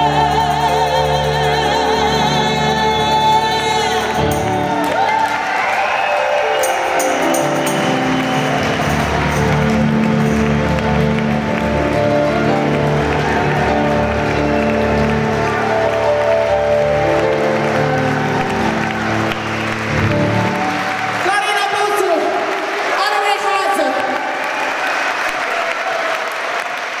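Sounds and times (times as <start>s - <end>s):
audience applauding: 0.0s - 27.0s
electric keyboard sustained chords: 6.1s - 21.2s.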